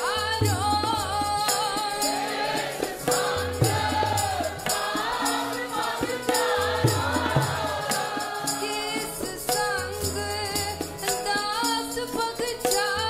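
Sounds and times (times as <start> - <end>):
harmonium: 0.0 - 13.0
tabla strokes: 0.0 - 13.0
women singing devotional song: 0.0 - 13.0.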